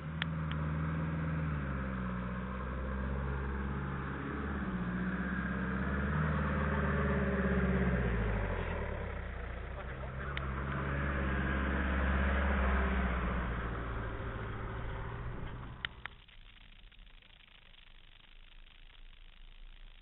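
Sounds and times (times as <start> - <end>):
pickup engine at low revs: 0.0 - 16.6.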